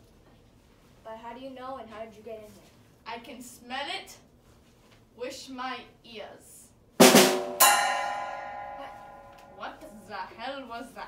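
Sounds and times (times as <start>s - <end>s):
drum-like crash: 7.0s - 9.6s
bright ringing hit: 7.3s - 10.1s.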